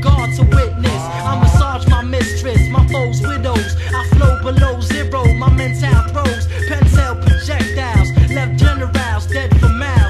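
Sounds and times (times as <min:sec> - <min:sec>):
steady bass line: 0:00.0 - 0:03.5
rapping over a drum beat: 0:00.0 - 0:10.0.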